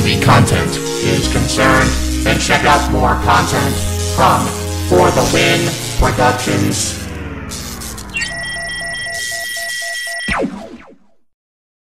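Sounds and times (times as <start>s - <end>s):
steady high electronic tone: 0.0s - 11.2s
pulsing low beep: 7.5s - 11.2s.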